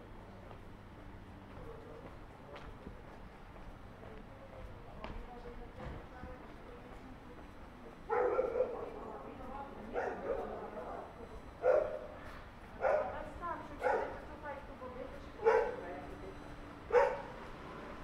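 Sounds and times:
dog barking: 0:08.1 - 0:09.0, 0:09.9 - 0:10.6, 0:11.6 - 0:12.2, 0:12.8 - 0:13.2, 0:13.8 - 0:14.2, 0:15.4 - 0:15.8, 0:16.9 - 0:17.4.

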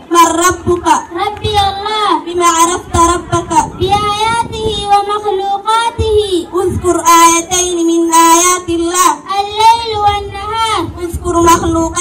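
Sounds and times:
girl singing into microphone: 0:01.2 - 0:12.0.

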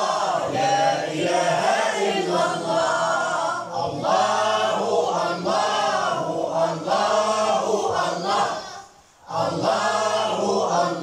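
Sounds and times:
boys choir singing: 0:00.0 - 0:11.0.

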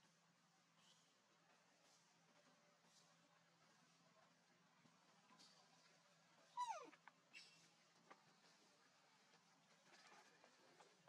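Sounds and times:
animal whimper: 0:06.6 - 0:07.0.

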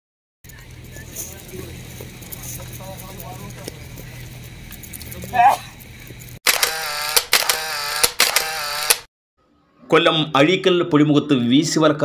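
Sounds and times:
engine humming: 0:00.4 - 0:08.9
faint voices: 0:00.5 - 0:05.8.

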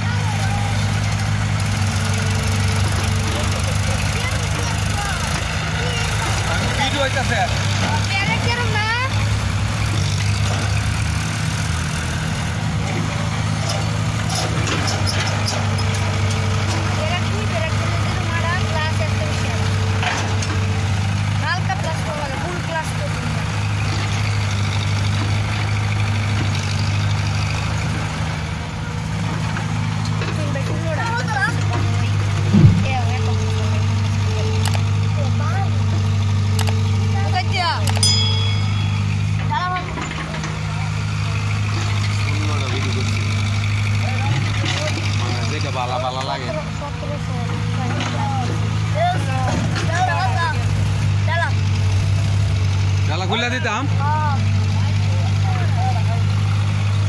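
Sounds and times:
excavator diesel engine: 0:00.0 - 0:57.0
tractor engine running: 0:00.0 - 0:57.0
loud bang: 0:32.4 - 0:33.4.

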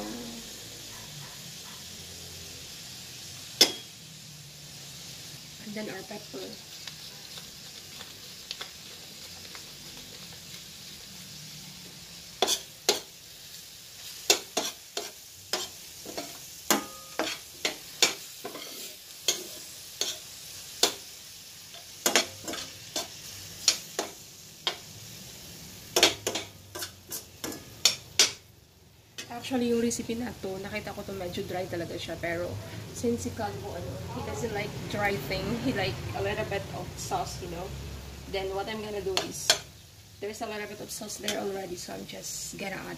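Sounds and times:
meat sizzling in a pan: 0:00.0 - 0:42.9
metal spoon scraping a pan: 0:12.3 - 0:13.1, 0:14.0 - 0:24.9, 0:25.9 - 0:28.4.

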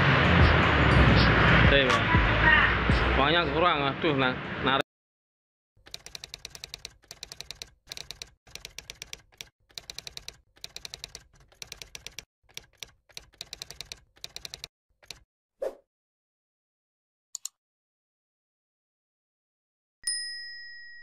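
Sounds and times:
keyboard key clicks: 0:05.8 - 0:15.2.

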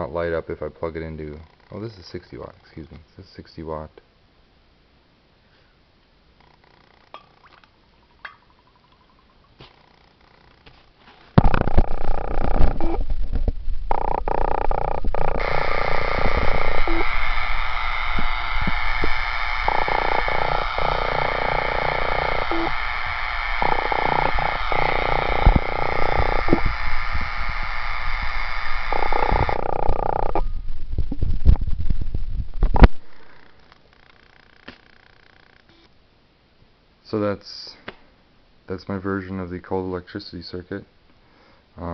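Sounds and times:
low electrical hum: 0:00.0 - 0:41.9
spark gap crackling buzz: 0:11.3 - 0:31.8, 0:32.6 - 0:35.7.

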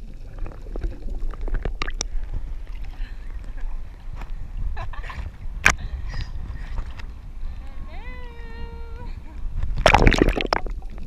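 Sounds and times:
water sloshing and splashing: 0:00.0 - 0:07.2, 0:09.6 - 0:11.0
low steady rumble: 0:00.0 - 0:11.0
sharp splash: 0:09.8 - 0:10.8.

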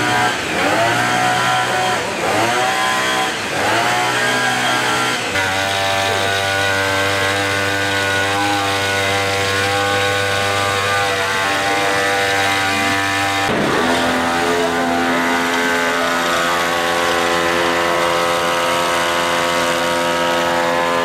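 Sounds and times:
two-stroke sprayer engine running: 0:00.0 - 0:21.0.

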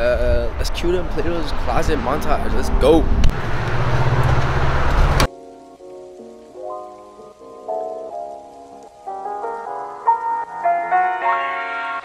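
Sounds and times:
loud rushing outdoor noise: 0:00.3 - 0:05.3
gentle piano music: 0:04.0 - 0:12.0.

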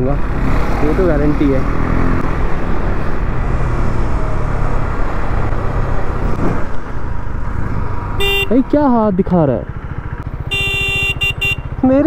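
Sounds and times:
wind and road rush: 0:00.0 - 0:12.0
motorcycle engine running: 0:08.2 - 0:12.0.

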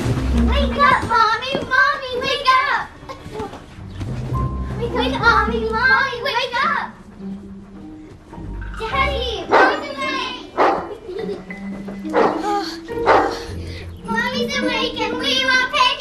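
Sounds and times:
soft background music: 0:00.0 - 0:16.0
voices: 0:04.8 - 0:07.0, 0:08.7 - 0:16.0
dog barking: 0:09.5 - 0:11.0, 0:12.1 - 0:12.4, 0:13.1 - 0:13.4.

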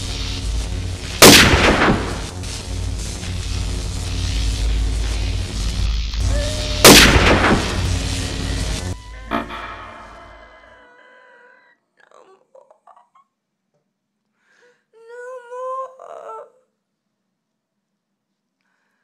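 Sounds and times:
dense rumbling noise: 0:00.0 - 0:10.7
loud boom-like hit: 0:01.2 - 0:02.4, 0:06.8 - 0:08.1, 0:08.8 - 0:10.6
ringing tones: 0:09.0 - 0:10.6.

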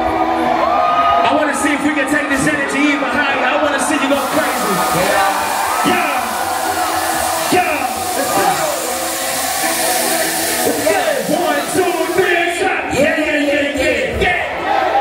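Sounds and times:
crowd screaming and cheering: 0:00.0 - 0:15.0
gas jets hissing: 0:03.9 - 0:13.3.

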